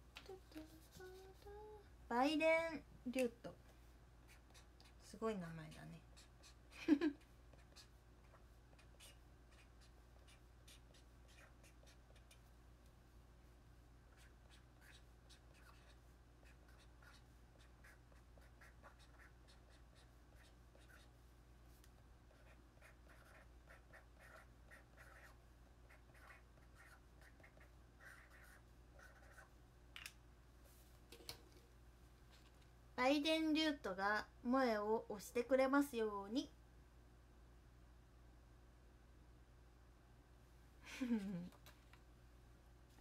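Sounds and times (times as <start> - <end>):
pen scratching on paper: 4.3 - 5.1, 5.7 - 6.6, 7.5 - 12.4, 14.1 - 21.1, 22.3 - 29.5.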